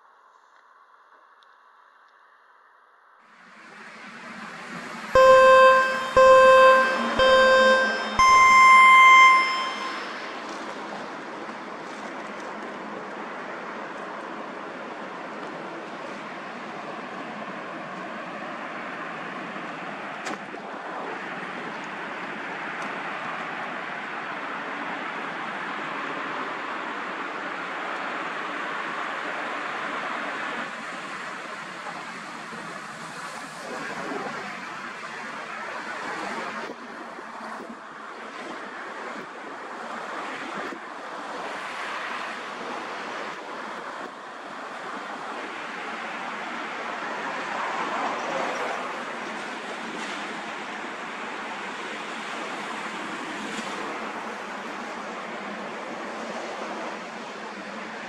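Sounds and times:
longer high beep: 0:05.2 - 0:10.6
short electronic beeps: 0:05.2 - 0:10.6.

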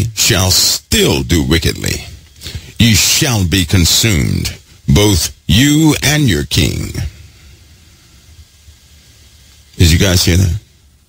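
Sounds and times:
faint steady hiss with low rumble: 0:00.0 - 0:11.0.

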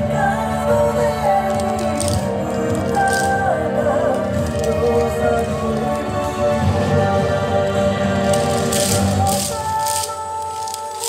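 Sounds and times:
wooden clappers rattling: 0:01.4 - 0:06.3, 0:08.2 - 0:11.0.

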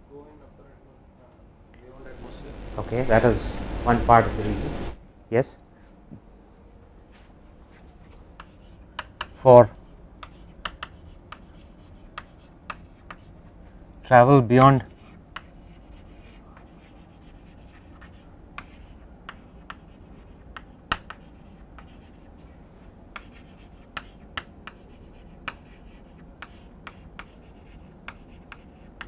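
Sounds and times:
faint room hiss: 0:00.0 - 0:29.0
chalk tapping and scraping on blackboard: 0:07.7 - 0:13.5, 0:14.7 - 0:29.0.

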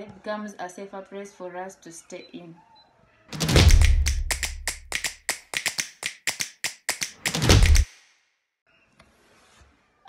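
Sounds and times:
rapid sharp clicks: 0:03.3 - 0:08.1.

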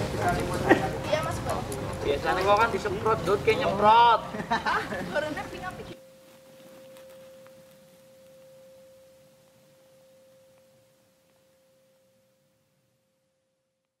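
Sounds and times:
faint steady pure tone: 0:05.8 - 0:14.0.

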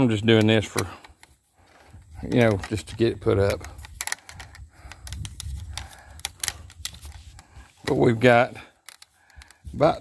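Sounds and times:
wire clicking and tapping: 0:00.3 - 0:08.0, 0:08.8 - 0:09.8.

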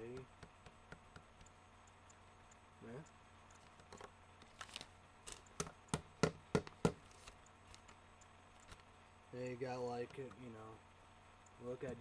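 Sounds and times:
sharp taps: 0:00.0 - 0:02.6.

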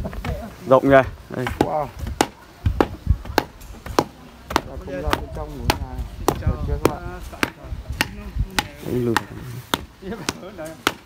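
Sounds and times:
rammer tamping earth: 0:00.0 - 0:11.0.

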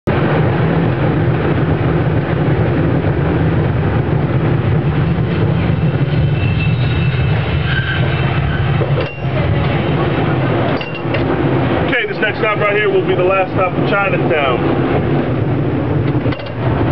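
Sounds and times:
cable car rumbling on rails: 0:00.1 - 0:16.9.

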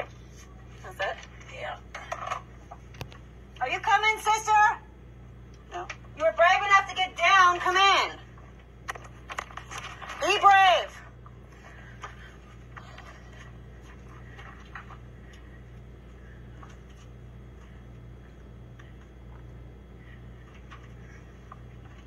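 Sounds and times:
steady low hum: 0:00.0 - 0:22.0
scuffs and clicks of climbing: 0:11.2 - 0:22.0.

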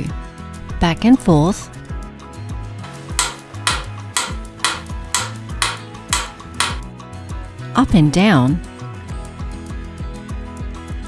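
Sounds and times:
background music: 0:01.0 - 0:10.0
metronome ticking: 0:02.9 - 0:06.8.

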